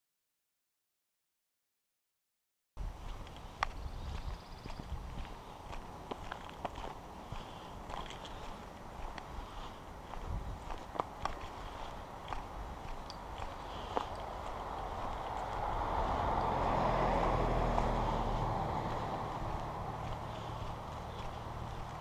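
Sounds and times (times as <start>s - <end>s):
footsteps crunching on dirt: 2.8s - 22.0s
vehicle passing: 3.4s - 22.0s.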